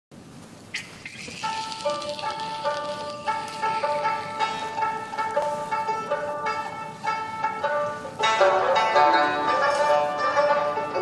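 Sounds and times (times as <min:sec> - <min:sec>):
plucked string notes: 0:00.7 - 0:11.0.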